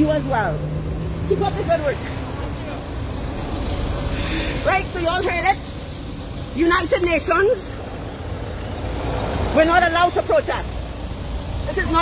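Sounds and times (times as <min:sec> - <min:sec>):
vehicle engines running: 0:00.0 - 0:12.0.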